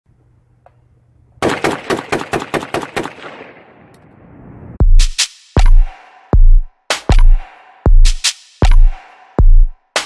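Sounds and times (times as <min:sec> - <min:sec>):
rapid rifle shots: 0:01.4 - 0:03.6
gunshot echo: 0:01.4 - 0:03.7.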